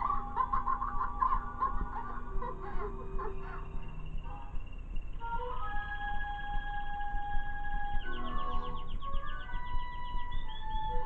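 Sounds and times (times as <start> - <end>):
clucking bird-like notes: 0.0 - 5.6
cartoon music: 0.0 - 11.0.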